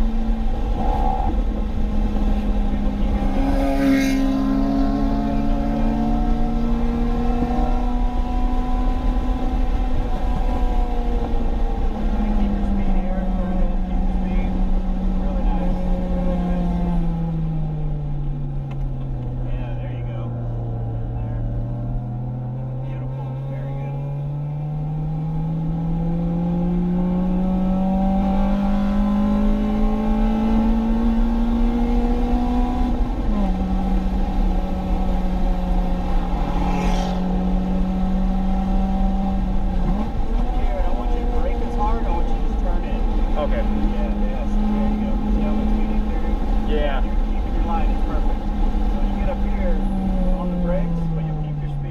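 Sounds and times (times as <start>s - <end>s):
car engine revving: 0.0s - 51.9s
road and wind noise: 0.0s - 51.9s.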